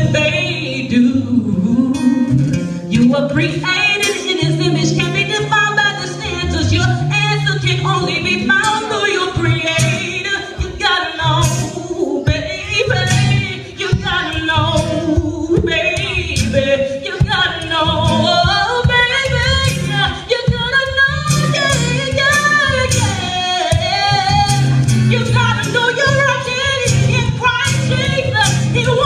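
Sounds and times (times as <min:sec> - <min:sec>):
acoustic accompaniment: 0:00.0 - 0:29.0
woman singing: 0:00.0 - 0:29.0.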